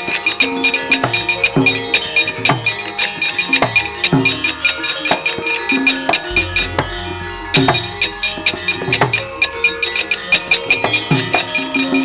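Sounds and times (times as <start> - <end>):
metallic strikes and drum strokes: 0.0 - 12.0
low gong hum: 6.3 - 9.0.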